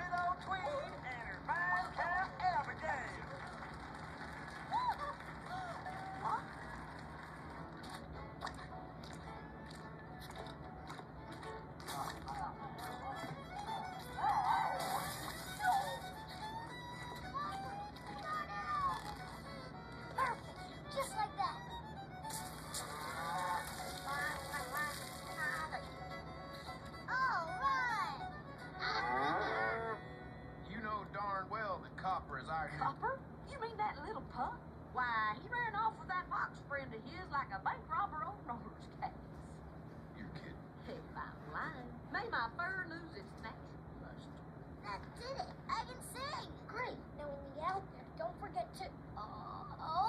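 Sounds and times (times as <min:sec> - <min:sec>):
cartoon puppy howling: 0:14.0 - 0:16.1, 0:28.8 - 0:30.0.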